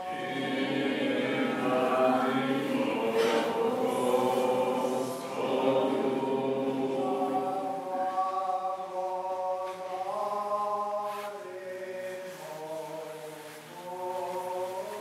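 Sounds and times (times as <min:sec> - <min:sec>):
voices singing liturgical chant: 0:00.0 - 0:15.0.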